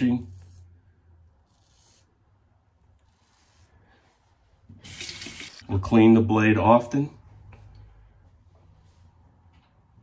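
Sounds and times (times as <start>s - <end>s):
water tap running: 4.8s - 5.7s.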